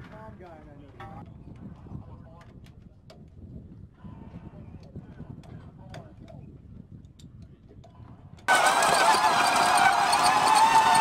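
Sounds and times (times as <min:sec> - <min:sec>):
motor running with high whine: 0:08.5 - 0:11.0.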